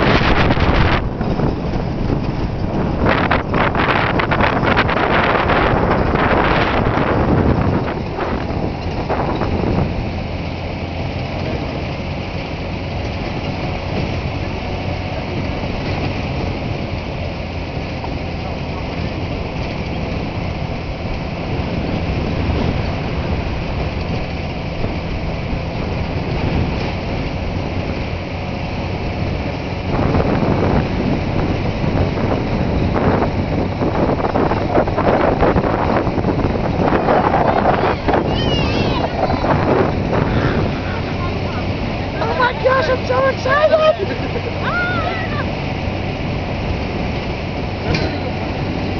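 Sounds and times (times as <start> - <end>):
road rumble: 0.0 - 48.9
truck engine hum: 0.0 - 48.9
wind buffeting microphone: 0.0 - 48.9.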